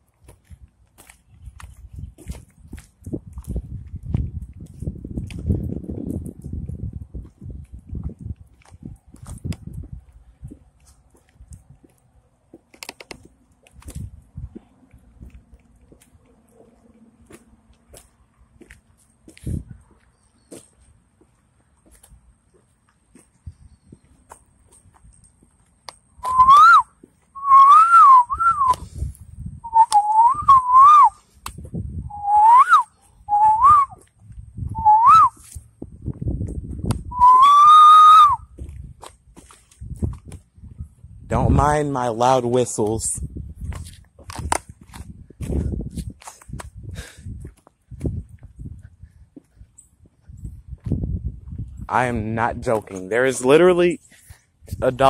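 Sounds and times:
person whistling loudly: 26.2s - 28.8s, 29.6s - 31.2s, 32.1s - 34.0s, 34.7s - 35.4s, 37.1s - 38.5s.

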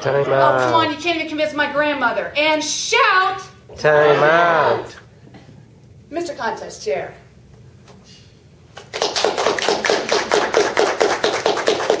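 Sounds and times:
audience applauding: 8.8s - 12.0s.

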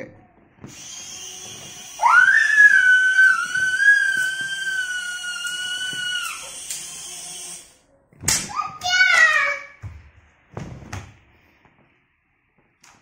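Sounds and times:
toy helicopter rotor whirring: 0.7s - 7.8s.

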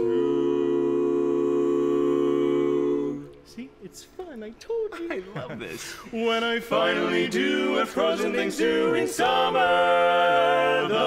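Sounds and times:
male quartet singing a cappella: 0.0s - 3.4s, 6.0s - 11.0s.

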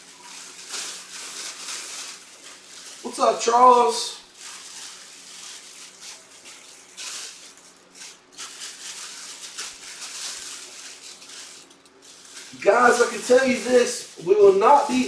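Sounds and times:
plastic wrapping crinkling: 0.0s - 15.0s.

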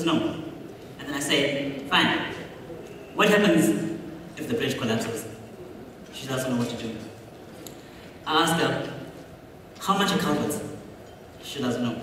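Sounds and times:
man talking: 0.0s - 5.4s, 6.1s - 7.2s, 8.2s - 9.1s, 9.8s - 12.0s.

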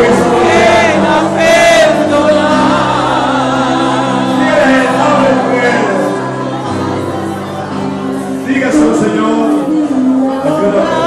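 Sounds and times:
congregation singing: 0.0s - 11.0s
person singing with vibrato: 0.0s - 11.0s
sustained backing chords: 0.0s - 11.0s.

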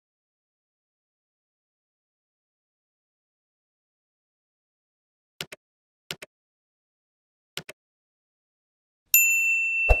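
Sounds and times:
bright bell ding: 9.2s - 10.0s.

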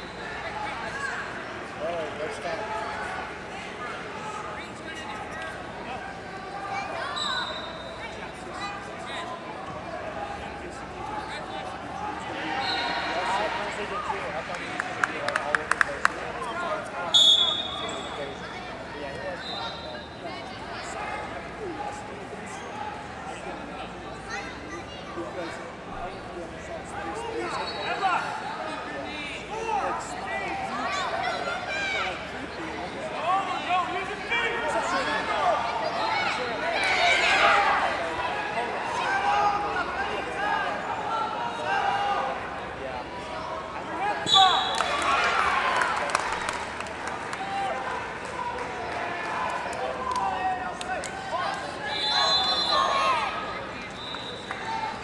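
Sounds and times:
babble of voices in a hall: 0.0s - 55.0s
referee's whistle: 7.0s - 8.1s, 12.6s - 13.2s, 17.1s - 18.2s, 19.4s - 20.2s, 44.2s - 45.0s, 51.8s - 53.2s, 53.8s - 54.6s
referee's whistle blast: 17.1s - 18.2s, 44.2s - 44.9s, 51.9s - 53.1s.

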